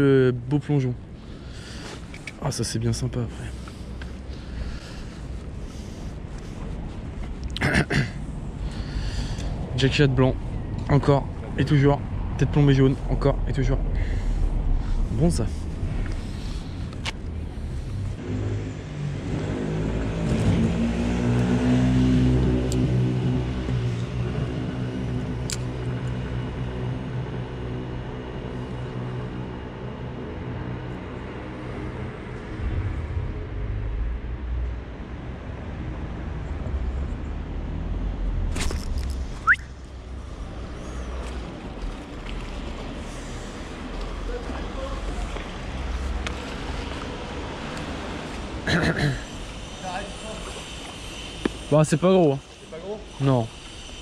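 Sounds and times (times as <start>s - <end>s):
low traffic rumble: 0.0s - 54.0s.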